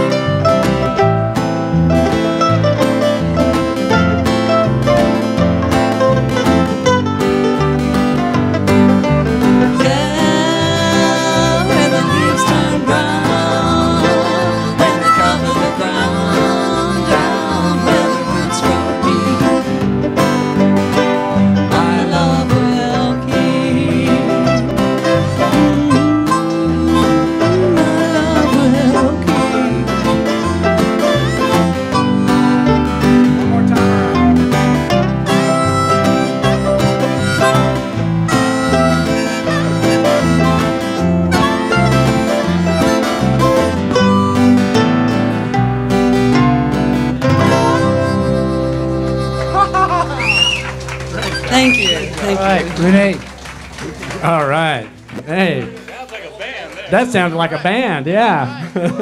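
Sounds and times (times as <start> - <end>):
harmonica playing: 0.0 - 22.4, 23.0 - 53.2
electric bass: 0.0 - 59.0
strummed acoustic guitar: 0.0 - 59.0.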